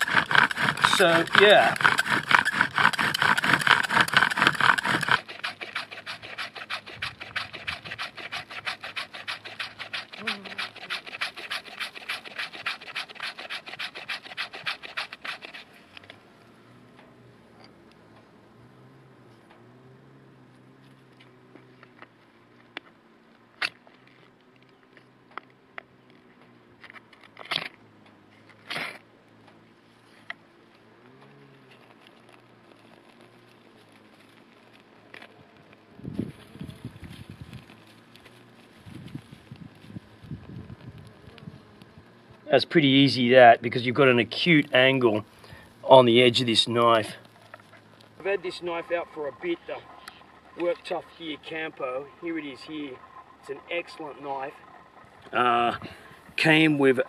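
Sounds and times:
sharp clicks: 0.0 - 10.3
bow drill rasping scrape: 0.0 - 16.2, 43.4 - 57.0.

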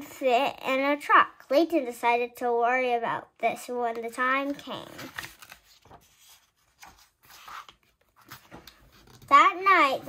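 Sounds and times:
hands rustling book pages: 4.0 - 10.0.

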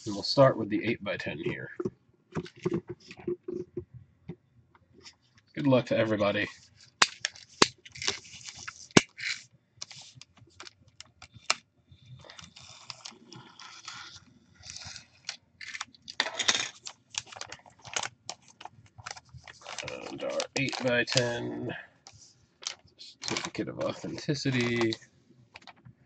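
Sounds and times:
foil pouch crinkling: 6.8 - 11.6, 12.2 - 21.4, 22.6 - 25.7
foil pouch tearing: 12.2 - 15.8, 16.8 - 21.4.

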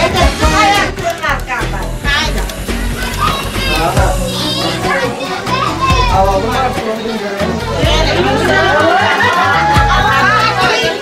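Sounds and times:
background music: 0.0 - 11.0
people talking and calling out: 0.0 - 11.0.

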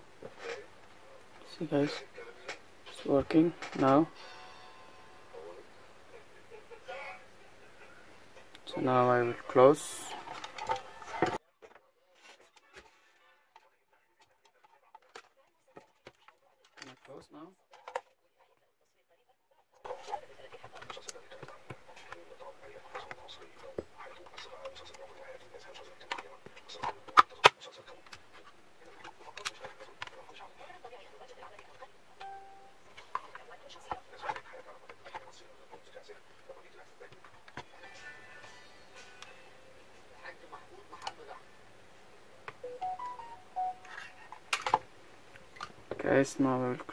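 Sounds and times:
faint steady hum: 0.0 - 11.4, 27.8 - 46.9
plastic parts clicking and knocking: 3.6 - 4.0.

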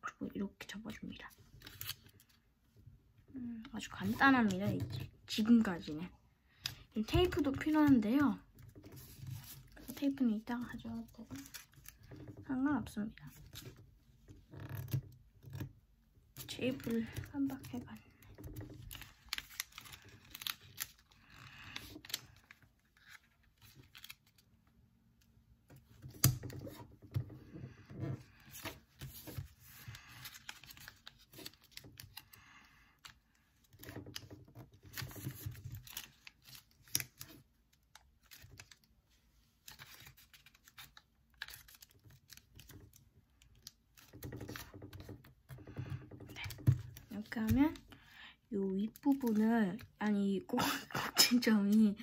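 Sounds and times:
paper being folded and creased: 1.0 - 2.5, 3.4 - 48.1, 48.7 - 50.2.

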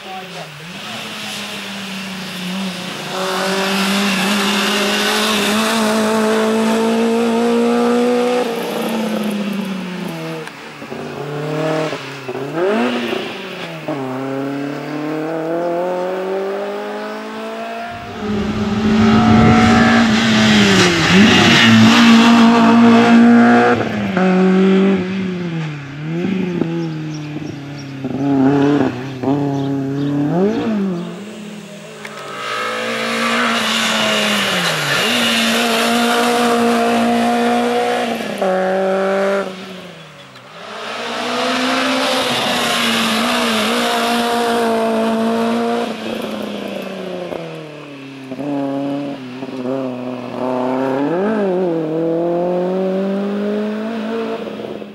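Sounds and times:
race car engine revving: 10.9 - 25.2.

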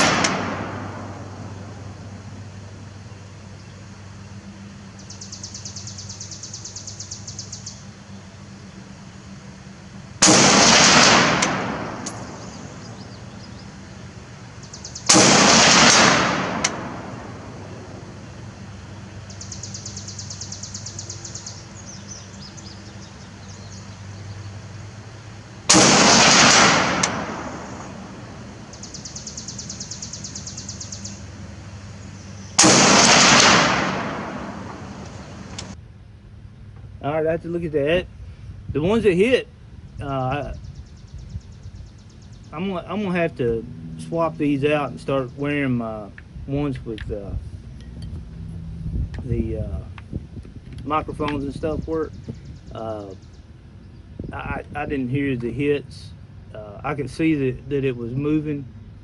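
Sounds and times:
rifle shots: 0.0 - 1.6, 10.2 - 12.7, 15.1 - 17.7, 25.7 - 28.6, 32.6 - 35.8.

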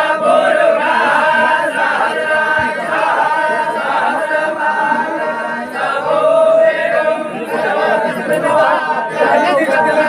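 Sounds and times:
crowd of men chanting: 0.0 - 10.0.

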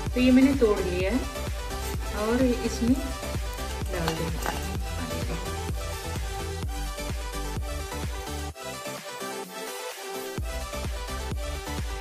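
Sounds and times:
electronic dance music: 1.7 - 12.0.

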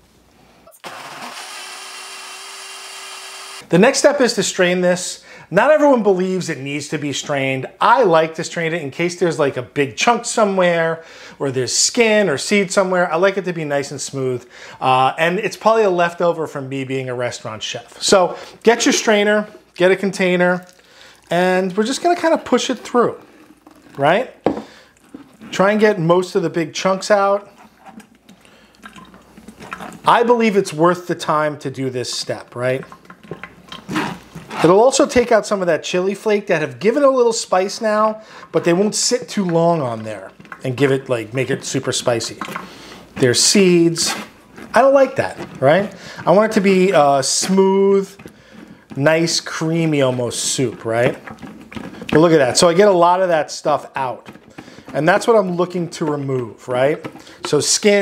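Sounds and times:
blender running: 0.7 - 3.7
spatula scraping soup through strainer: 38.2 - 58.0.

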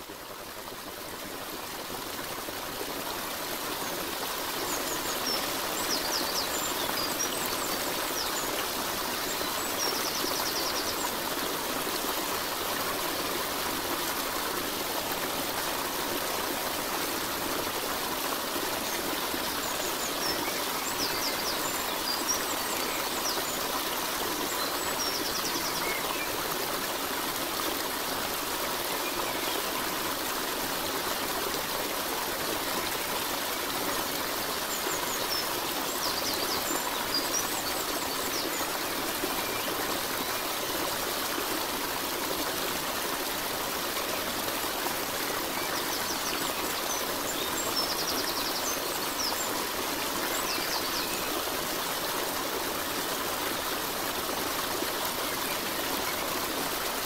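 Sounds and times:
stream water rushing: 0.0 - 57.0.

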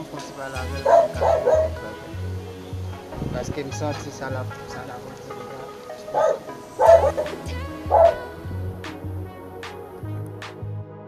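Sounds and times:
dog barks: 0.8 - 1.9, 6.0 - 8.3
music with bass beat: 6.0 - 11.0.

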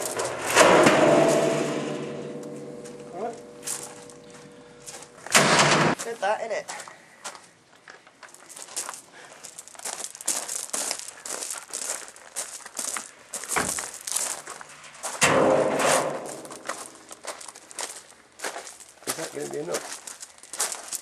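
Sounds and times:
metal drum ringing clang: 0.0 - 4.7, 5.3 - 6.0, 15.2 - 17.1
steel drum rolling on gravel: 0.0 - 5.2, 13.9 - 20.6
crunching and scraping on gravel: 0.0 - 5.3, 5.9 - 21.0.

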